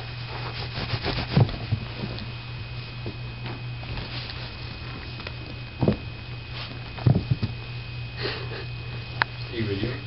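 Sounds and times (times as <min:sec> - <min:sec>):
fingers scratching fabric: 0:00.4 - 0:01.5.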